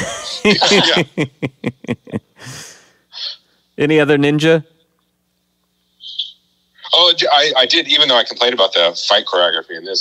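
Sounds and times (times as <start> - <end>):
man talking: 0.5 - 1.2
breath intake into microphone: 2.4 - 3.4.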